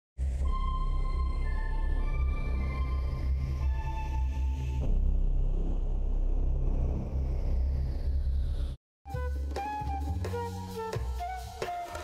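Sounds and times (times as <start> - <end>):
low rumbling drone: 0.2 - 8.8.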